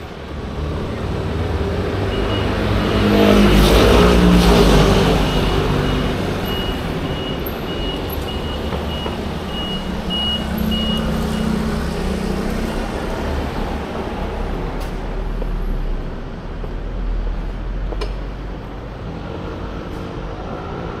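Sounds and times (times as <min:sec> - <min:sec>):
traffic rumble: 0:00.0 - 0:21.0
high electronic beeps: 0:05.1 - 0:11.5.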